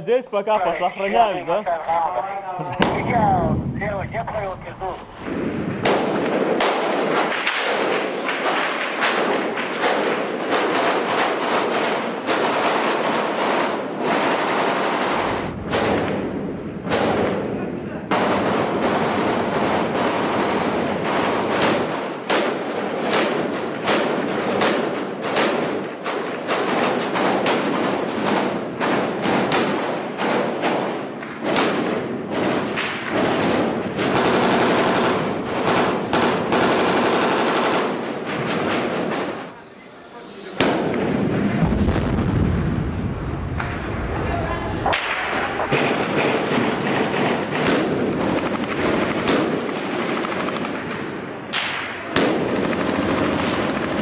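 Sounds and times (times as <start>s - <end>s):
small-arms gunfire: 5.2s - 17.5s, 18.1s - 39.5s, 45.0s - 54.0s.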